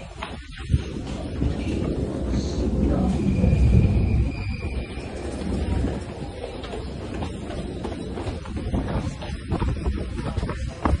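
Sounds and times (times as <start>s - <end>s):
footsteps on tiled stairs: 0.0s - 2.3s, 5.1s - 11.0s
heavy low rumble: 0.0s - 11.0s.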